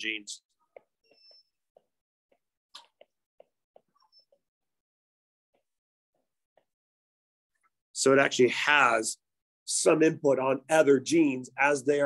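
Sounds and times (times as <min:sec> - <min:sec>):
stylus tapping on tablet: 0:00.7 - 0:04.5, 0:05.5 - 0:06.8.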